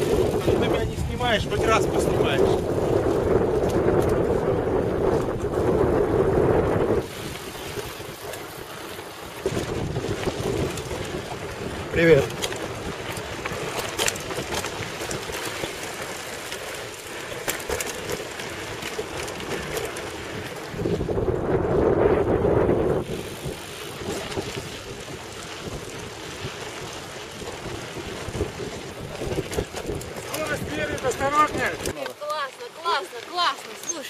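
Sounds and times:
wind buffeting microphone: 0:00.0 - 0:32.0
mountain bikes rattling on dirt: 0:00.0 - 0:34.0.

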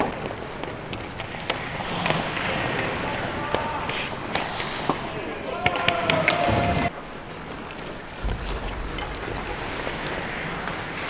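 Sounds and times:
hockey sticks hitting puck: 0:00.0 - 0:06.9
skates hissing on ice: 0:01.2 - 0:05.1
player shouting: 0:05.3 - 0:06.9.

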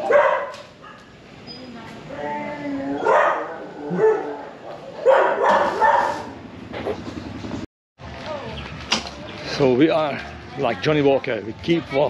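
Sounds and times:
dog barking: 0:00.0 - 0:01.1, 0:03.0 - 0:04.4, 0:05.0 - 0:06.4.

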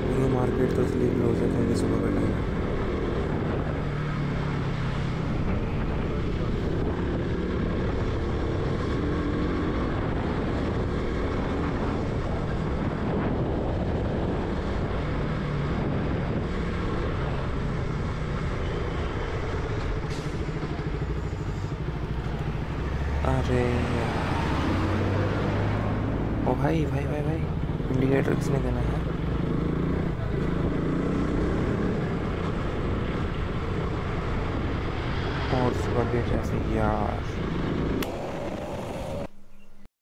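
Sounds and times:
motorcycle engine running: 0:00.0 - 0:23.8, 0:28.8 - 0:39.3.

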